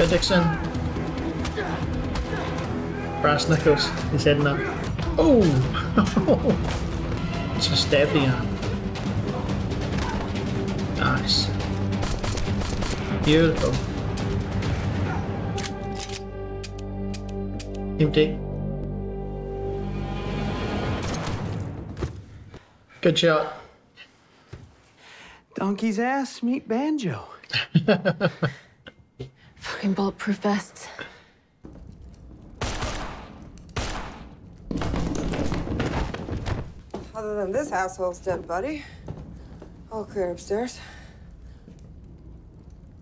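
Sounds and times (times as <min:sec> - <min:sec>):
gunshots: 0:32.6 - 0:36.8.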